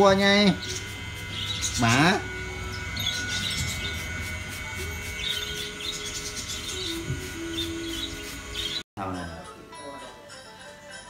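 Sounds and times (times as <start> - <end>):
small birds chirping: 0.1 - 8.8.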